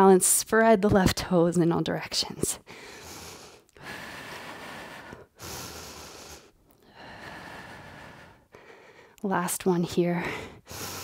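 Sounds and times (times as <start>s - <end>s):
woman breathing in and out: 2.6s - 9.2s, 10.1s - 11.0s.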